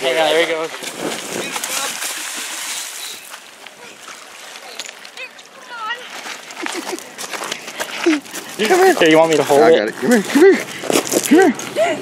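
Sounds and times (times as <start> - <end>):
hooked fish splashing in water: 0.6 - 5.4.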